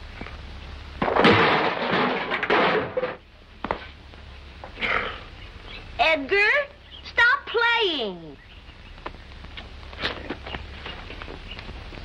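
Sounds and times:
scraping crash on the ground: 1.0 - 4.0.

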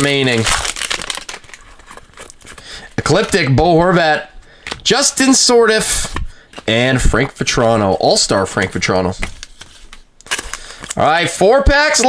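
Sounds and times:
foil pack crinkling: 0.0 - 3.4, 8.4 - 11.4
cards being handled: 5.7 - 11.1.

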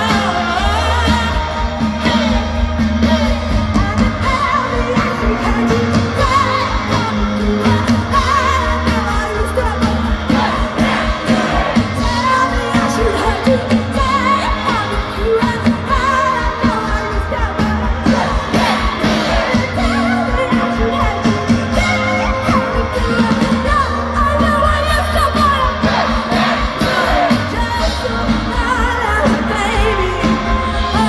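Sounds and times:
live pop band: 0.0 - 31.0
woman singing: 0.0 - 31.0.

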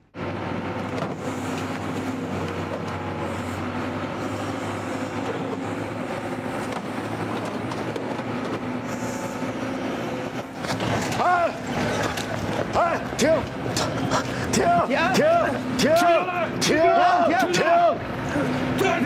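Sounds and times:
heavy diesel machinery droning: 0.0 - 19.0.

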